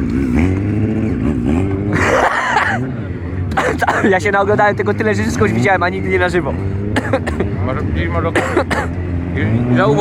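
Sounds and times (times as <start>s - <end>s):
motorcycle engine revving: 0.0s - 10.0s.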